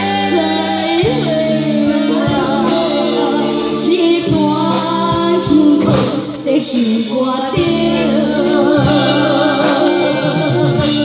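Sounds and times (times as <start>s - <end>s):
boy and woman singing duet: 0.0s - 11.0s
live band playing: 0.0s - 11.0s.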